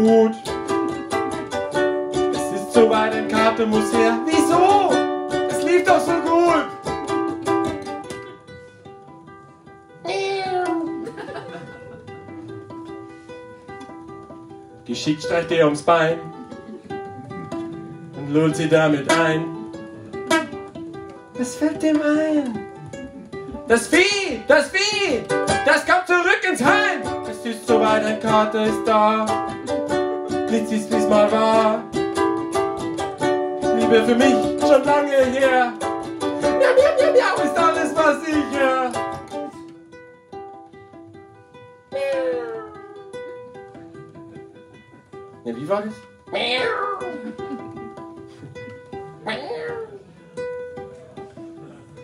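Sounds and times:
person singing: 0.0s - 1.0s, 2.1s - 6.9s, 16.1s - 20.6s, 21.4s - 32.0s, 33.6s - 39.6s, 41.9s - 43.2s
ukulele plucked notes: 0.0s - 52.0s.

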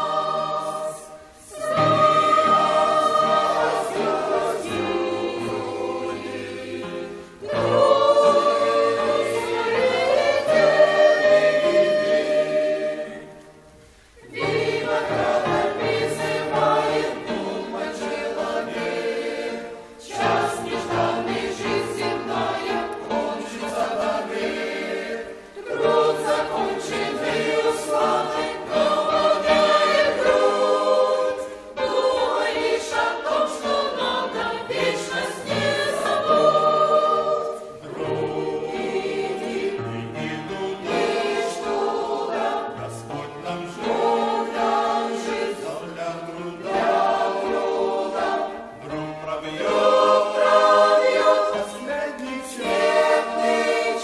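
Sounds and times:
mixed choir singing a hymn: 0.0s - 54.0s.

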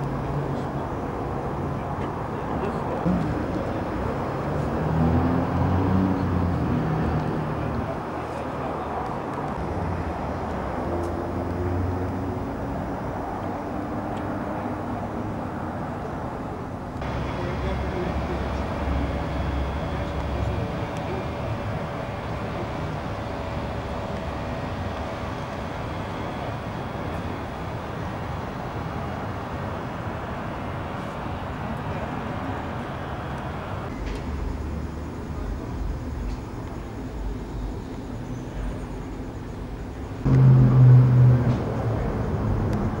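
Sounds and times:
indistinct voices: 0.0s - 28.0s
low rumble of vehicles: 0.0s - 43.0s.

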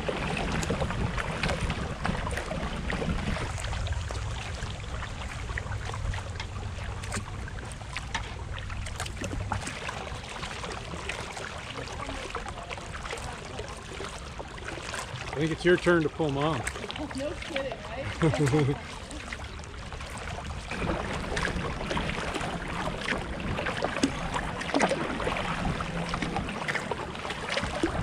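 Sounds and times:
wind rumble on microphone: 0.0s - 14.2s, 19.6s - 28.0s
paddle water splashing and dripping: 0.0s - 28.0s.

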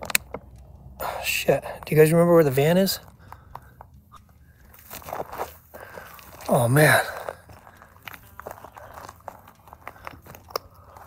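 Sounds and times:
footsteps crunching on gravel: 1.2s - 11.0s.

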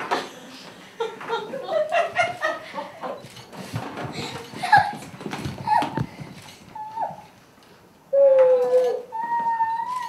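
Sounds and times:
children squealing: 8.4s - 10.0s.

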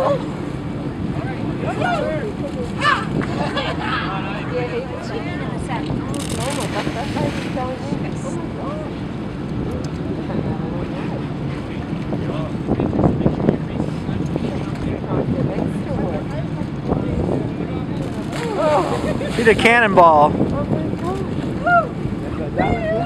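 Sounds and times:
ship and sea noise: 0.0s - 23.0s
wind buffeting microphone: 0.0s - 23.0s.

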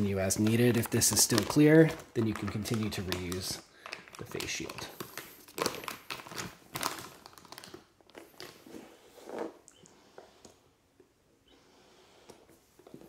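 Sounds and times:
plastic face shield crinkling: 0.0s - 8.9s.

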